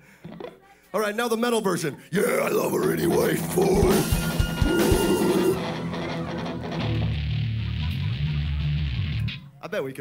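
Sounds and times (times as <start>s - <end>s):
live rock band playing: 3.2s - 9.4s.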